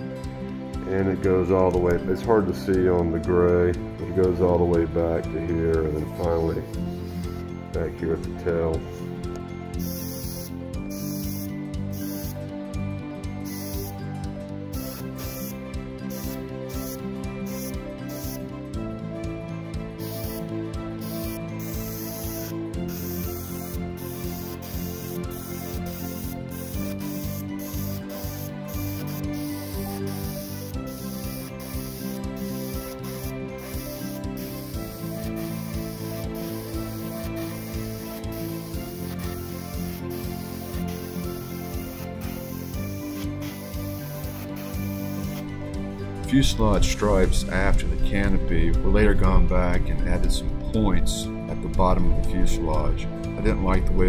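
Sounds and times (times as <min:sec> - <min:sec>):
background music: 0:00.0 - 0:54.0
airbrush hissing: 0:06.2 - 0:07.6, 0:08.8 - 0:09.2, 0:09.8 - 0:12.4, 0:13.4 - 0:18.5, 0:20.0 - 0:45.5.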